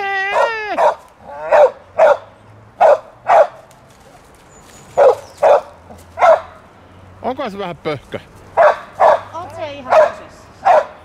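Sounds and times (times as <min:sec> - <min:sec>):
dog barking: 0:00.3 - 0:03.7, 0:04.9 - 0:06.6, 0:08.6 - 0:11.0.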